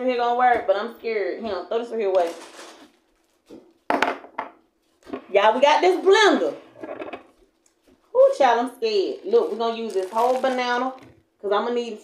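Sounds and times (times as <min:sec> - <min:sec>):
kitchen things knocking on countertop: 0:03.9 - 0:04.6.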